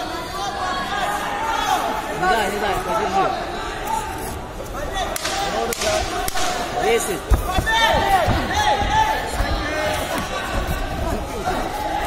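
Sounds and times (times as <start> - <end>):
voices shouting: 4.8 - 12.0
sharp slaps or cracks: 5.1 - 6.7.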